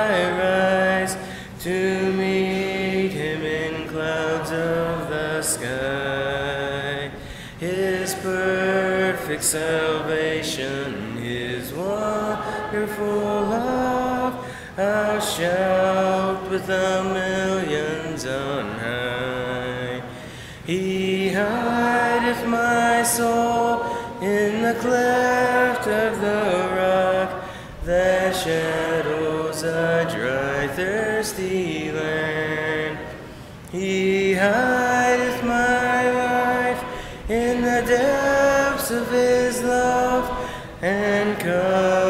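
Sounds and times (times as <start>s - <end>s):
congregation singing a hymn: 0.0s - 42.0s.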